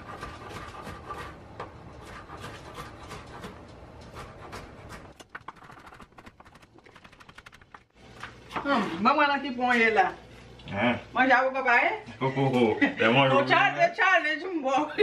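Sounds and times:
knife chopping on wooden board: 0.0 - 5.8.

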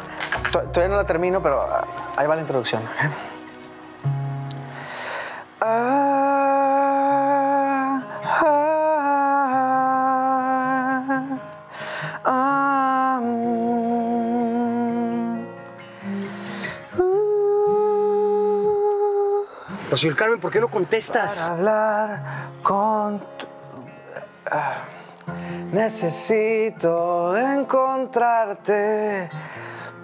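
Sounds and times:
acoustic guitar: 0.0 - 30.0
man humming a melody: 5.6 - 11.6, 12.2 - 19.9.

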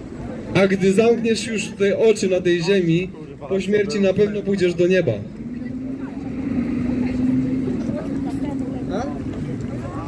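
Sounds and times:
faint voices of passers-by: 0.0 - 10.0
vehicle engine humming: 0.0 - 10.0.

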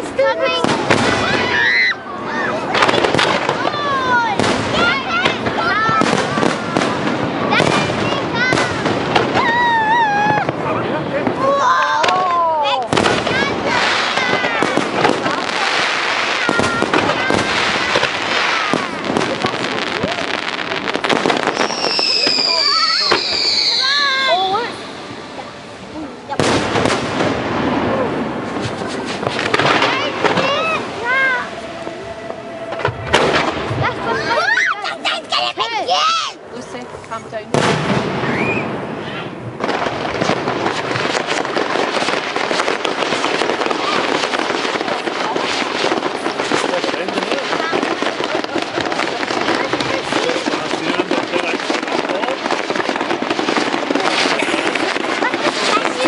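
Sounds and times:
fireworks bangs: 0.0 - 56.0
fireworks crackling: 0.0 - 56.0
onlookers' voices: 0.0 - 56.0.

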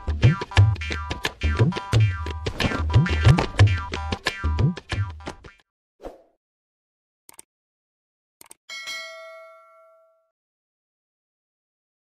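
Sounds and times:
notification bell ding: 8.7 - 10.3.

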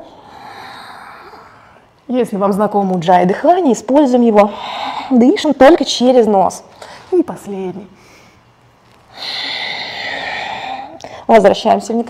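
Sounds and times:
breathy nasal exhale: 9.1 - 11.2.

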